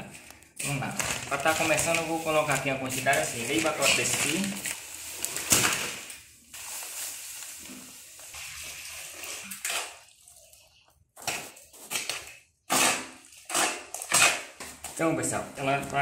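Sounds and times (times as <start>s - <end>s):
dry mortar pouring: 0.0s - 15.8s
trowel scraping mortar: 11.2s - 15.0s.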